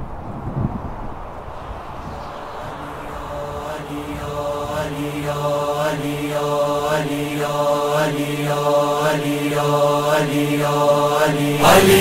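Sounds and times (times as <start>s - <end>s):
low sustained vocal drone: 1.6s - 12.0s
chorus chanting in pulses: 1.9s - 12.0s.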